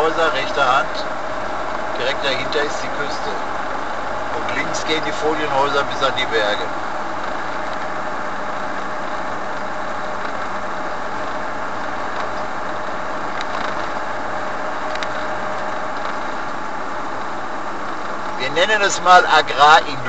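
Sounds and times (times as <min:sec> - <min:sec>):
vehicle road noise from cabin: 0:00.0 - 0:20.0.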